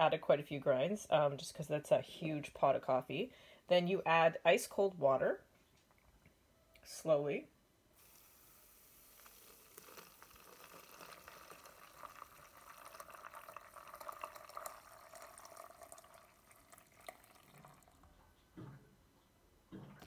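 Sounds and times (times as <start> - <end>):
water trickling into carafe: 8.0 - 18.2
soft knock: 18.6 - 18.9.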